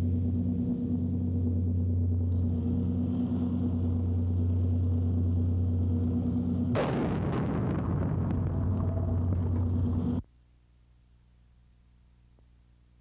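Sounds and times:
steady low hum: 0.0s - 13.0s
rocket motor firing: 6.6s - 10.2s.

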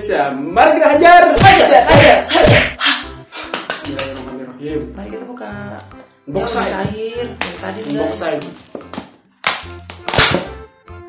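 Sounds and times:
plastic lid cracking: 7.4s - 10.5s.

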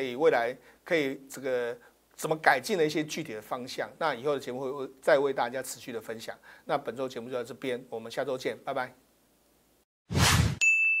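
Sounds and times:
short whoosh: 10.1s - 10.6s
bright bell-like ding: 10.6s - 11.0s.

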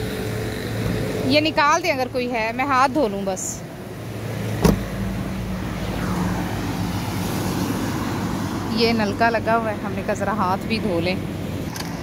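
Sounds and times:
road traffic noise: 0.0s - 12.0s
vehicle engine humming: 0.0s - 12.0s.

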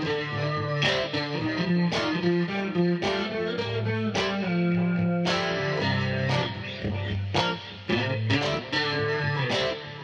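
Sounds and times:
electric guitar with effects: 0.0s - 10.0s
layered guitar loops: 0.0s - 10.0s.

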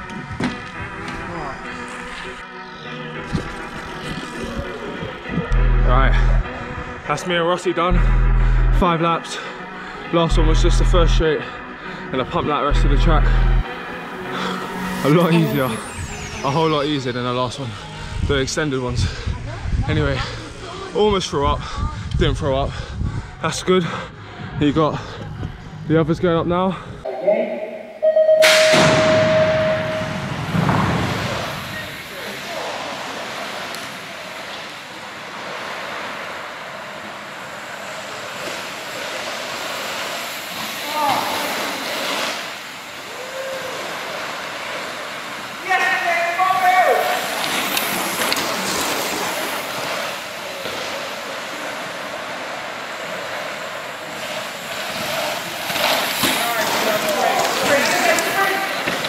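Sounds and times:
electronic start tone: 5.5s - 6.5s, 12.7s - 18.0s, 27.1s - 30.6s
start gate dropping with bang: 28.2s - 31.2s
bike tyres rolling on dirt: 30.4s - 59.0s.

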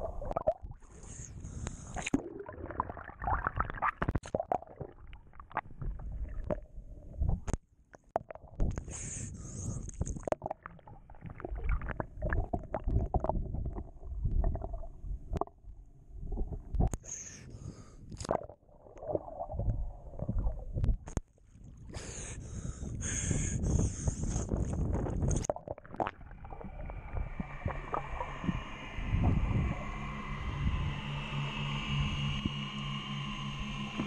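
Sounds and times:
rising bubbles: 0.0s - 0.9s, 2.0s - 7.5s, 10.2s - 16.9s, 18.3s - 21.0s, 25.4s - 30.5s
underwater water rumble: 0.0s - 7.6s, 8.2s - 34.0s.

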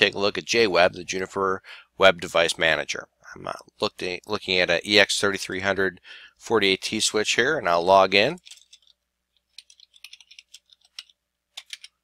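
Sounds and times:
keyboard keystrokes: 9.6s - 12.0s.

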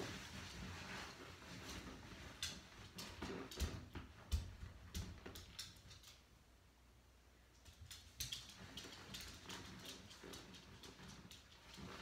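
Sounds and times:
dog claws clicking on hardwood floor: 2.3s - 6.3s, 7.6s - 12.0s.

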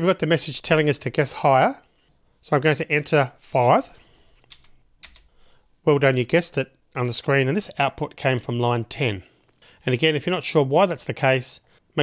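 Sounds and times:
computer keyboard key clicks: 4.5s - 5.3s.

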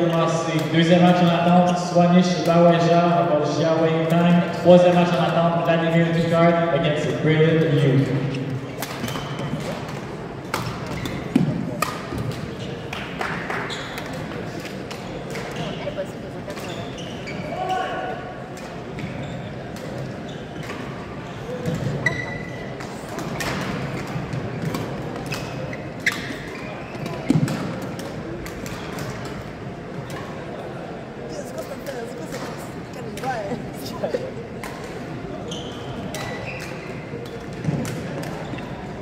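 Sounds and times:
rackets striking shuttlecocks: 8.7s - 15.8s.

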